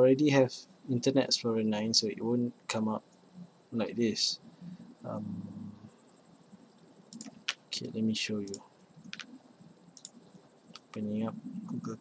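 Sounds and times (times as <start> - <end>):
computer mouse clicks: 6.8 - 7.6, 8.4 - 9.4, 10.0 - 11.1.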